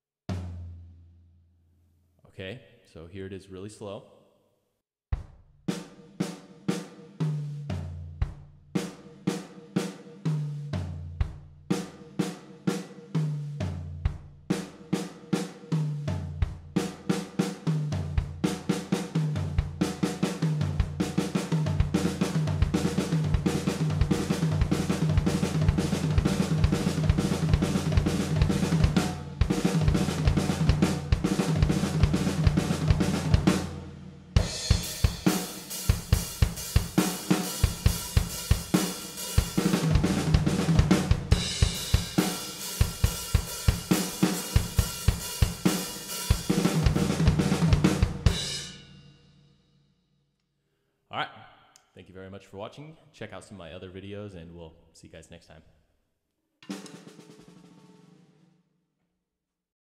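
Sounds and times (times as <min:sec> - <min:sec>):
drum kit fill: 0:00.3 - 0:00.9, 0:05.1 - 0:49.1, 0:56.6 - 0:58.5.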